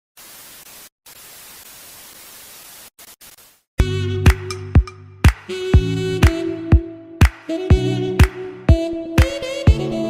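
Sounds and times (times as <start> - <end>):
tv static hiss: 0.2 - 3.7
music with heavy beat: 3.8 - 10.0.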